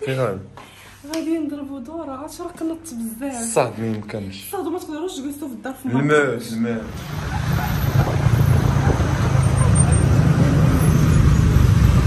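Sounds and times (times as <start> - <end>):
city road traffic: 6.6 - 12.0
engine rumble and road noise: 6.7 - 12.0.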